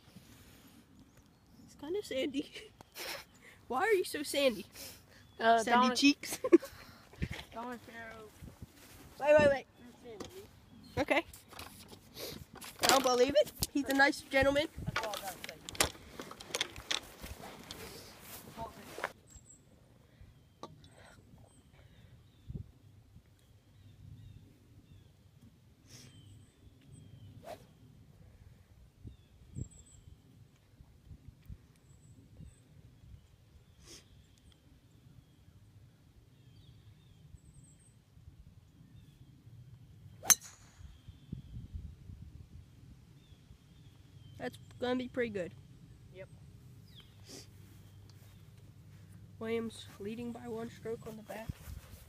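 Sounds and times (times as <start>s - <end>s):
rustling noise: 7.2s - 9.3s, 11.2s - 19.2s, 49.8s - 52.0s
bird chirps: 40.1s - 41.8s, 46.8s - 48.6s
golf club striking ball: 40.2s - 41.2s.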